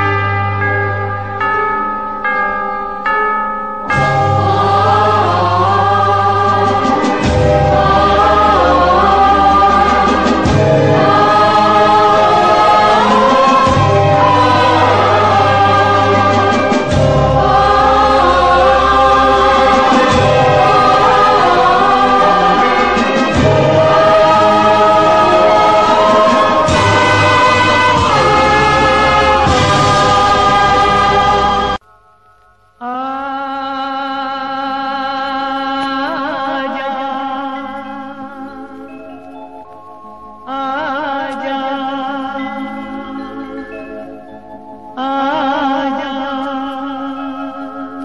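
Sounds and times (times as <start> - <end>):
brass chords: 3.9 - 31.8
chorus of voices with orchestra: 4.0 - 31.8, 40.4 - 48.0
steady bass line: 4.2 - 31.8.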